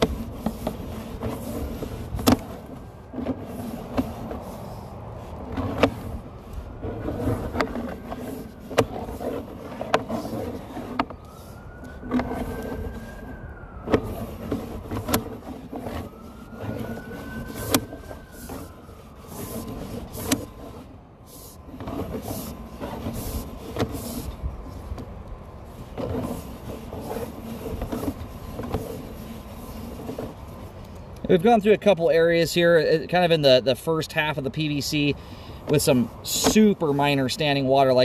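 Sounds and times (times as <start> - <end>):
rising and falling whine: 9.4 - 21.7.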